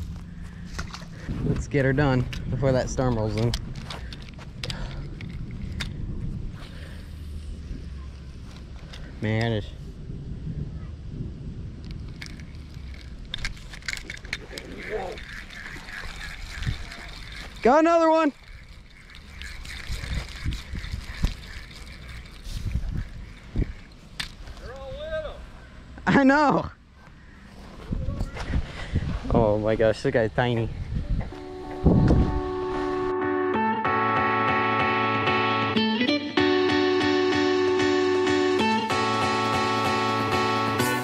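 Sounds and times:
wind rumbling on microphone: 0:00.0 - 0:17.7, 0:18.3 - 0:25.0, 0:27.6 - 0:33.1
fishing reel clicks: 0:11.8 - 0:24.8.

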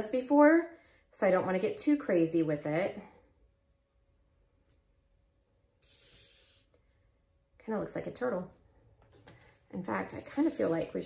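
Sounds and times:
faint steady hum: 0:00.0 - 0:11.0
brief hiss: 0:05.8 - 0:06.7.

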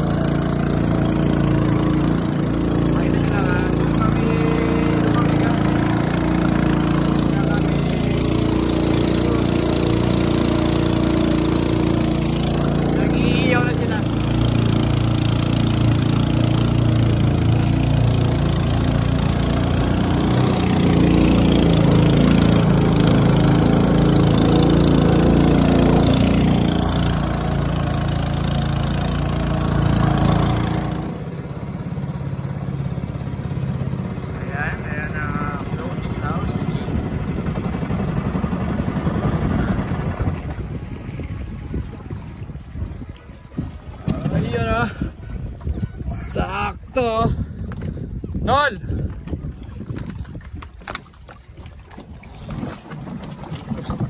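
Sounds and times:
small boat engine running: 0:00.0 - 0:54.0.

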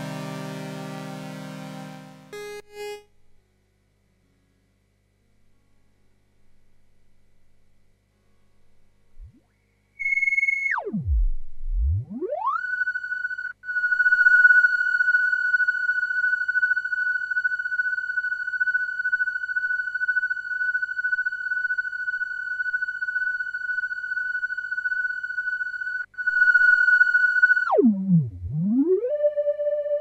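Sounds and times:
high steady synthesizer tone: 0:00.0 - 0:03.2.

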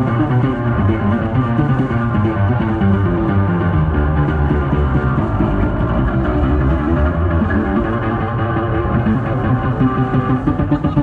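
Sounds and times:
electric bass guitar solo: 0:00.0 - 0:11.0.

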